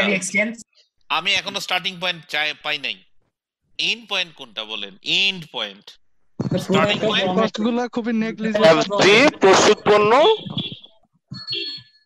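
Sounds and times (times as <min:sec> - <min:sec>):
person talking: 0:03.8 - 0:10.8.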